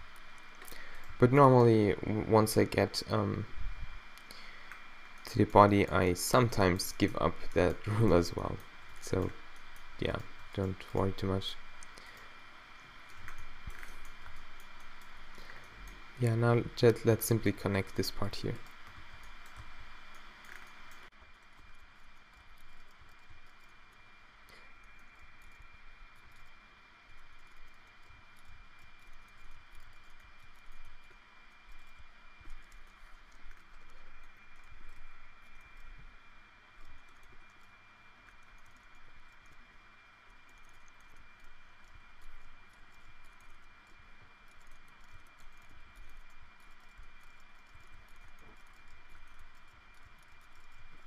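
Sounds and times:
low microphone hiss: 0.0 - 51.0
keyboard and mouse clicks: 13.0 - 21.1
computer keyboard keys clicking: 13.0 - 23.8, 40.4 - 51.0.

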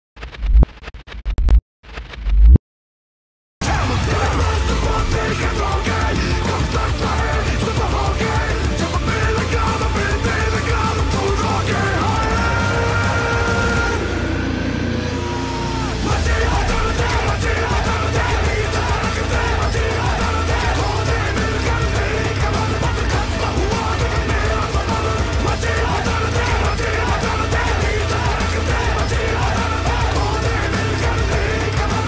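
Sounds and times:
stuttering scratchy static: 0.2 - 2.6, 16.0 - 32.0
heavy metal music: 3.6 - 32.0
deep bass swell: 3.7 - 32.0.

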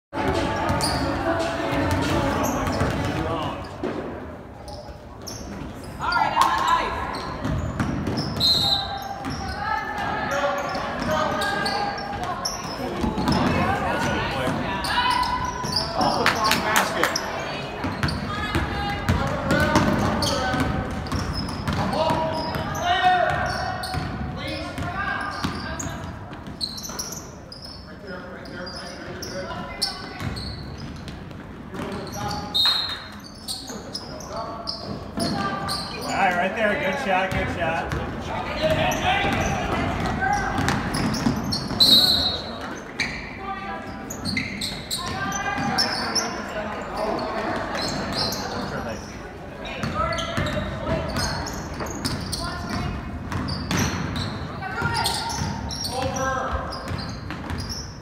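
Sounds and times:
chatter of many voices: 0.1 - 58.0
basketballs bouncing on wooden floor: 0.2 - 4.1, 7.2 - 10.2, 10.9 - 16.2, 17.8 - 27.0, 29.5 - 32.3, 37.3 - 42.0, 44.3 - 46.0, 49.8 - 57.8.

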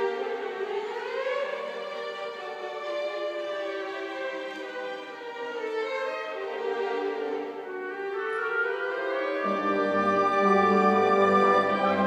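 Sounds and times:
orchestral strings playing: 0.0 - 12.0.

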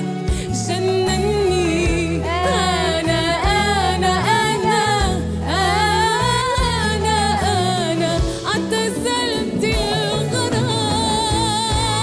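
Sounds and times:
live band bass line: 0.0 - 12.0
woman singing with vibrato: 0.3 - 12.0.

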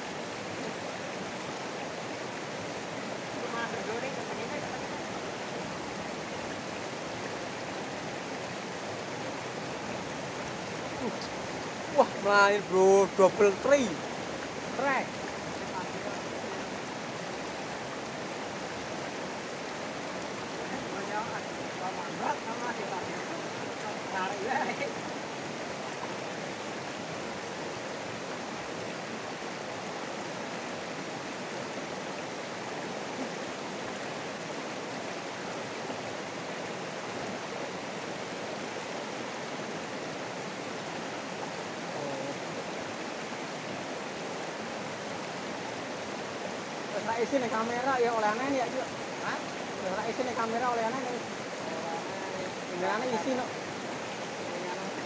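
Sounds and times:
river rushing over stones: 0.0 - 55.0.

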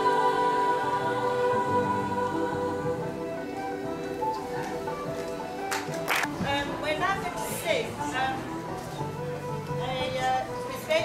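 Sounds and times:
girls choir singing: 0.0 - 4.0
woman speaking: 9.8 - 11.0.

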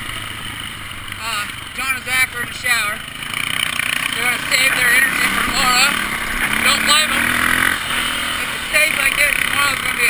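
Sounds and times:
dirt bike engine running: 0.0 - 10.0.

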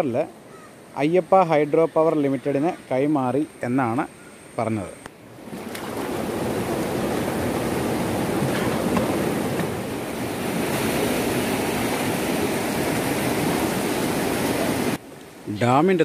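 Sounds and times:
river rushing over rocks: 6.0 - 15.0.

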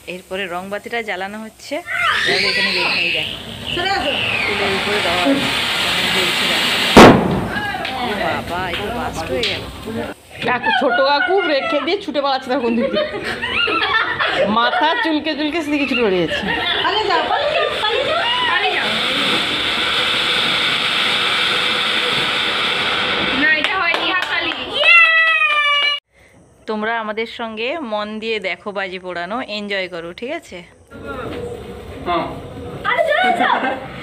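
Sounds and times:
firework fountain hissing: 0.0 - 25.8, 30.2 - 34.0
people's voices: 1.8 - 19.6
loud firework bang: 2.8 - 8.5.

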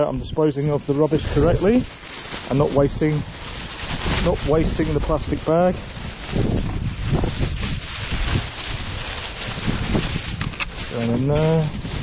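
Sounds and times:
wind buffeting microphone: 0.0 - 12.0
plastic bags rustling: 0.5 - 12.0.

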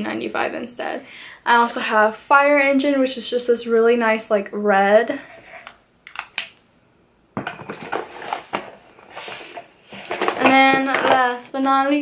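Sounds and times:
packaging rustling: 7.4 - 10.4.

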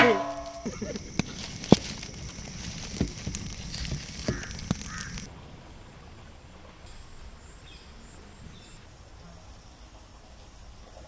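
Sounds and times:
bird calls: 0.0 - 5.3
wood fire popping: 0.0 - 5.4
faint high bird chirps: 6.9 - 9.9.

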